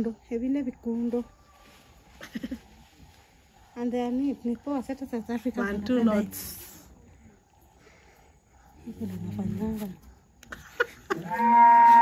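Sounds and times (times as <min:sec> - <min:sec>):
woman laughing: 0:02.2 - 0:02.8, 0:10.4 - 0:12.0.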